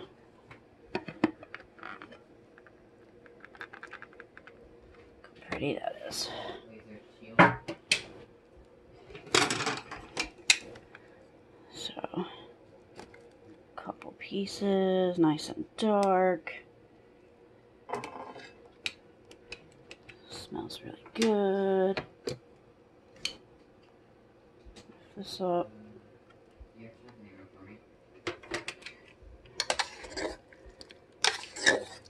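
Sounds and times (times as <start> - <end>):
kitchen utensils and dishes clattering: 29.6 - 30.4, 31.2 - 32.0.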